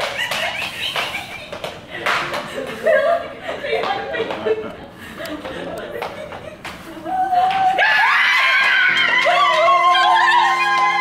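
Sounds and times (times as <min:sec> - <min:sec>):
women shrieking with joy: 0:07.7 - 0:11.0.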